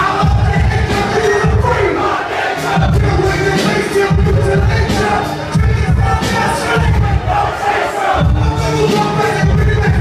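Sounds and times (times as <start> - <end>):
crowd shouting along: 0.0 - 10.0
hip hop beat with heavy bass: 0.0 - 10.0.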